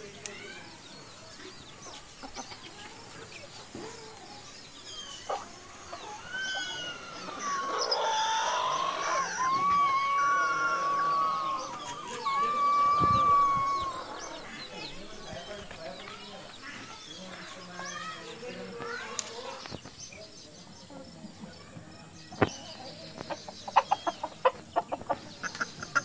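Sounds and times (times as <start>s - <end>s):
faint bird chirps: 0.0s - 26.0s
rooster crowing: 6.4s - 14.6s.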